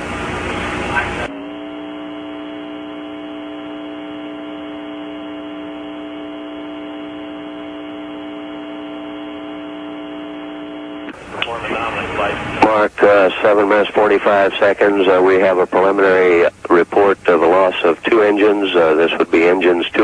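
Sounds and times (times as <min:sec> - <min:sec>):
steady electrical hum: 0:00.0 - 0:20.0
commentary voice: 0:11.4 - 0:20.0.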